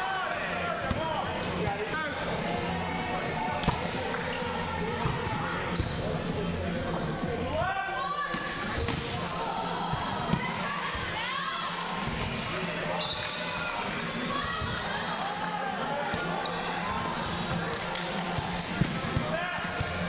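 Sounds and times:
players' voices: 0:00.0 - 0:20.0
shoes squeaking on court floor: 0:05.7 - 0:06.3, 0:16.2 - 0:19.2.

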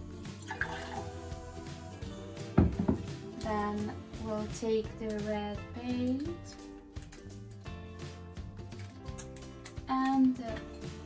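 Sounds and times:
background music: 0:00.0 - 0:11.0
water pouring into a glass: 0:00.4 - 0:01.2.

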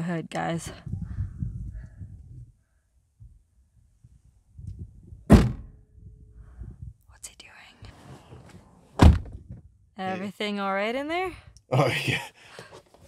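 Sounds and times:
car door shutting: 0:05.3 - 0:05.7, 0:08.2 - 0:09.6
car hood slamming shut: 0:05.3 - 0:05.7, 0:09.0 - 0:09.4.

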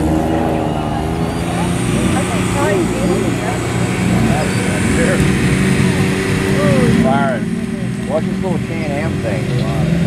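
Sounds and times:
car engines running: 0:00.0 - 0:10.0
onlookers calling: 0:00.0 - 0:10.0.

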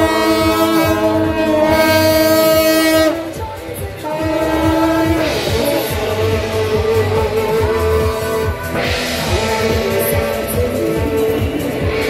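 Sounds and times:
brass horns blowing held note: 0:00.0 - 0:03.4, 0:04.0 - 0:10.6.

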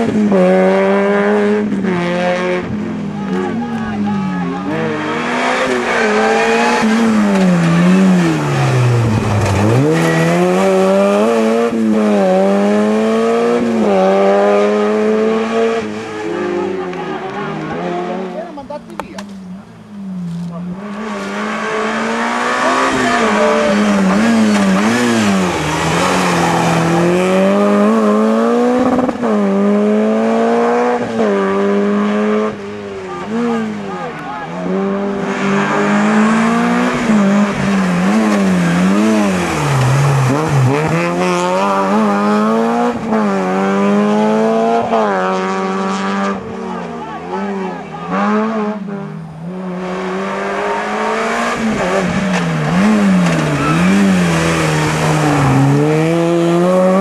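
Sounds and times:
rally car engines revving: 0:00.0 - 0:57.0.

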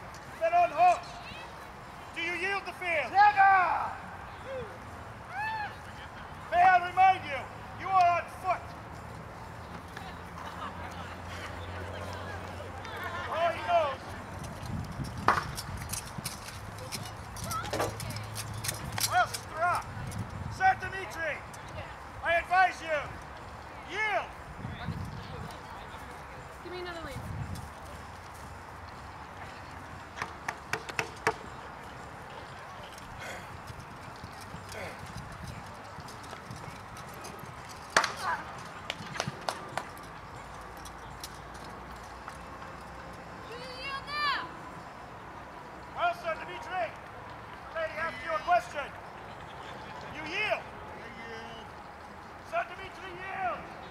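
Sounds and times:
horse hoofbeats on grass: 0:24.8 - 0:43.2.

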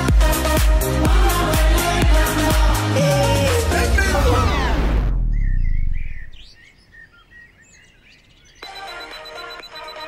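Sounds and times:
pop music slowing down: 0:00.0 - 0:05.3, 0:08.6 - 0:10.0
low rumble: 0:03.0 - 0:06.4
birds chirping: 0:04.6 - 0:10.0.

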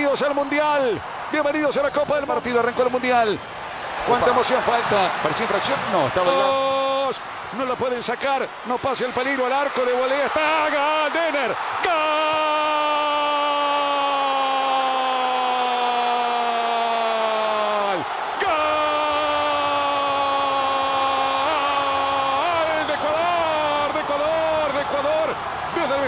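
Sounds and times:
excited shouting: 0:06.3 - 0:26.0.

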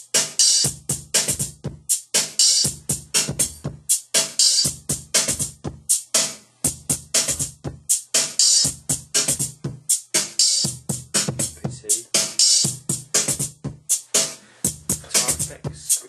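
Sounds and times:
sample-based drum beat: 0:00.0 - 0:16.0.

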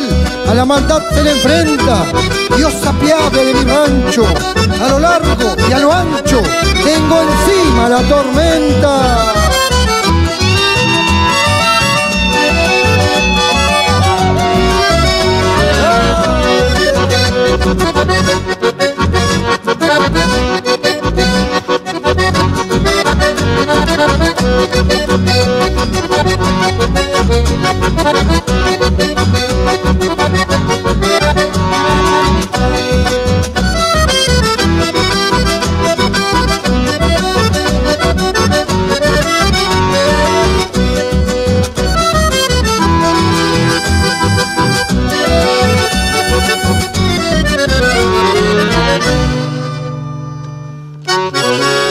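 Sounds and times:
acoustic bass: 0:00.0 - 0:51.9
button accordion melody: 0:00.0 - 0:51.9
guitars: 0:00.0 - 0:51.9.

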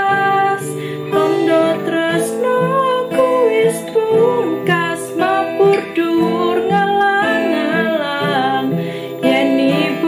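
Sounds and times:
acoustic guitar: 0:00.0 - 0:10.0
woman singing: 0:00.0 - 0:10.0.

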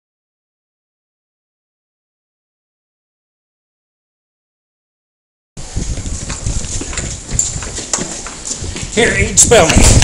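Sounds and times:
clothing rubbing on microphone: 0:05.6 - 0:10.0
knocks and thumps: 0:05.8 - 0:09.0, 0:09.6 - 0:10.0.

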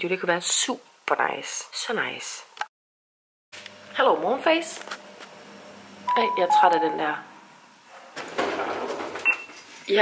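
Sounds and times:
person speaking: 0:06.1 - 0:07.3.

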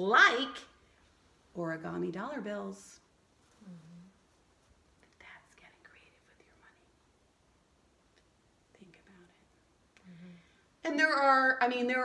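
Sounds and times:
faint whispering: 0:03.5 - 0:04.4, 0:05.0 - 0:07.1, 0:08.7 - 0:10.6.

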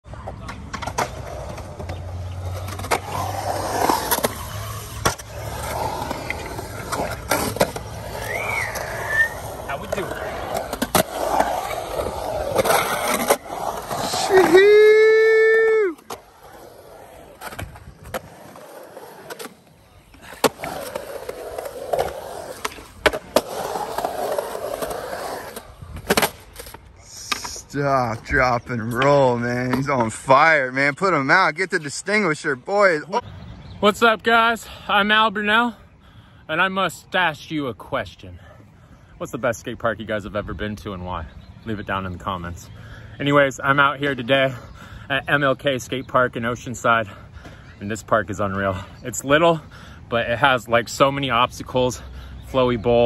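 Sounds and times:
skateboard wheels rolling on concrete: 0:00.0 - 0:35.9, 0:36.5 - 0:53.0
person shouting: 0:14.2 - 0:16.0.

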